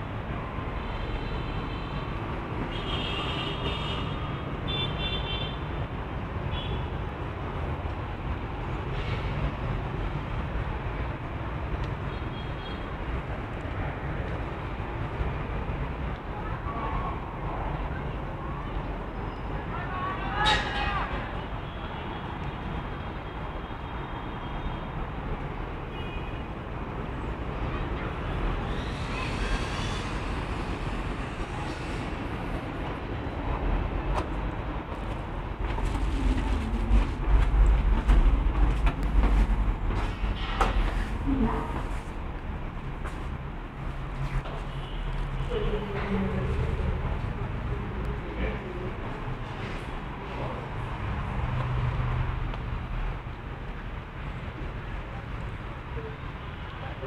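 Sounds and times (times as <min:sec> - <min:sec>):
distant city traffic hum: 0:00.0 - 0:57.0
low rumbling and bumps: 0:35.5 - 0:42.2.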